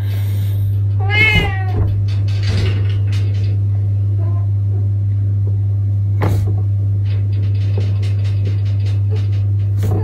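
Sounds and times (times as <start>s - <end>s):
steady low hum: 0.0s - 10.0s
cat meowing: 1.0s - 1.8s.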